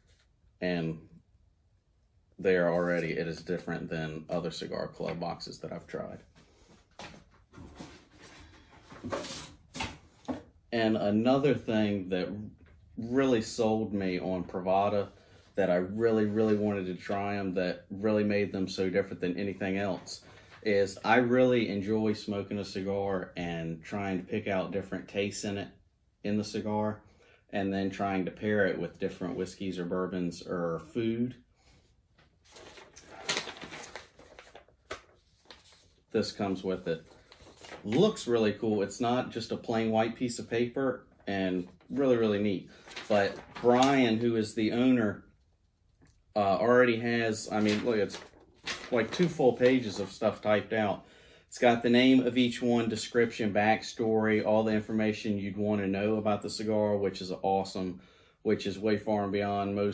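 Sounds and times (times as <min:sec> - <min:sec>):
packaging rustling: 0:32.4 - 0:36.0, 0:37.0 - 0:38.2, 0:42.7 - 0:44.2, 0:47.5 - 0:50.3.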